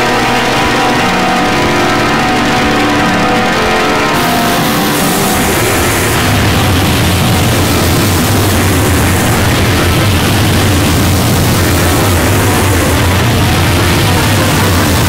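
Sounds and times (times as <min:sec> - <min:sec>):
dense harsh noise: 0:00.0 - 0:15.0
heavy low drone: 0:00.0 - 0:15.0.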